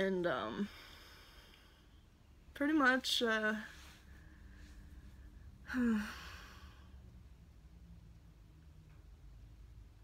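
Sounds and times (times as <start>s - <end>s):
woman sighing: 5.6s - 7.0s.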